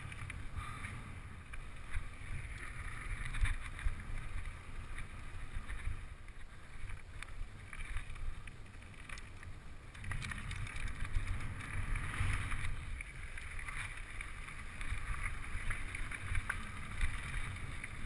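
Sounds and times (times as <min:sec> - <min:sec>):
bike rattling and clicking: 0:00.0 - 0:18.0
bike tyres on rough ground: 0:00.0 - 0:18.0.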